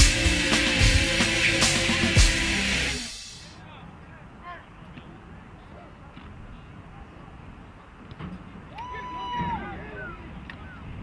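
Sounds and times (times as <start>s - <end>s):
rock music: 0.0s - 3.5s
distant voices outdoors: 0.2s - 11.0s.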